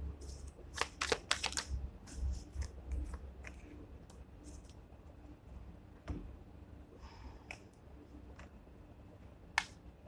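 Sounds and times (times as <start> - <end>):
cards being shuffled: 0.3 - 3.6.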